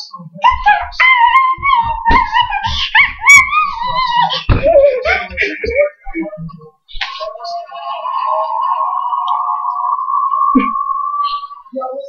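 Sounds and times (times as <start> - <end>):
high wavering howl-like vocal: 0.4 - 5.4, 7.1 - 12.0.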